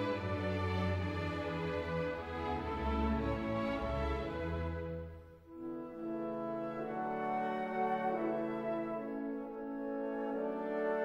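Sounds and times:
orchestra playing slow music: 0.0 - 11.0.

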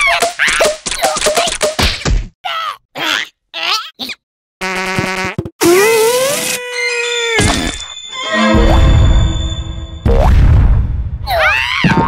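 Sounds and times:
squeaky cartoon character vocals: 2.5 - 4.2, 5.8 - 8.5
cartoon fart sounds: 4.6 - 6.6.

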